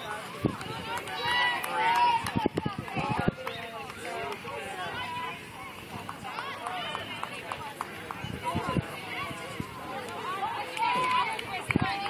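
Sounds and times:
crowd talking: 0:00.0 - 0:12.0.

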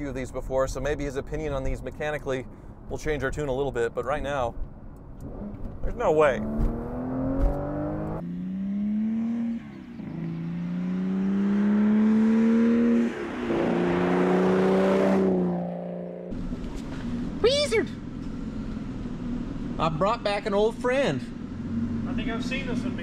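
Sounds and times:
car engine accelerating hard: 0:05.2 - 0:17.4, 0:20.8 - 0:23.0.

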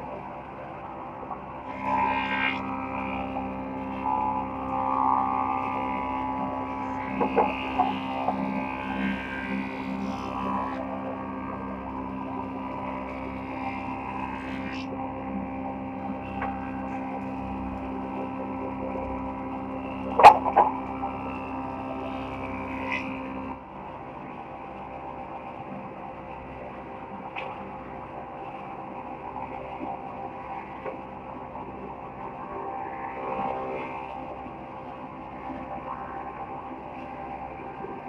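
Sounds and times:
wood planer droning hum: 0:00.0 - 0:38.0.

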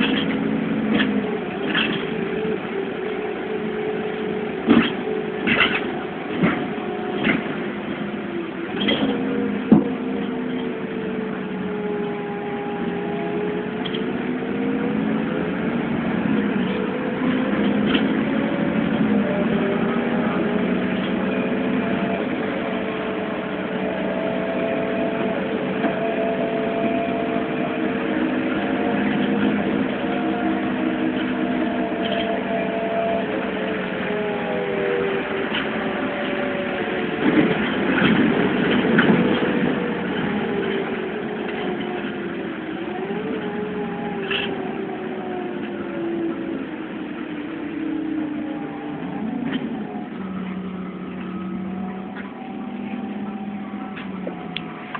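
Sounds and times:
bus engine droning: 0:00.0 - 0:54.9.

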